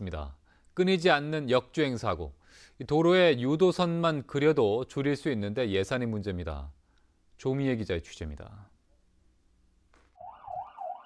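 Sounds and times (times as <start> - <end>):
ambulance siren wailing: 10.2 - 11.0.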